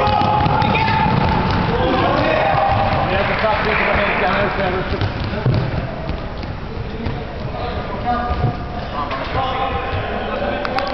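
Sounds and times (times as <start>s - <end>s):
players' voices echoing: 0.0s - 10.9s.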